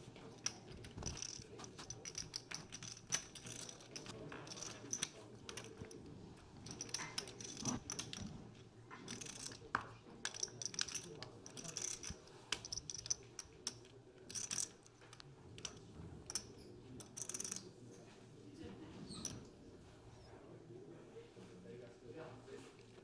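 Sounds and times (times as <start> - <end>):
poker chips clicking and clattering: 0.4 - 6.0, 6.6 - 8.3, 9.1 - 9.7, 10.3 - 14.8, 15.6 - 17.6.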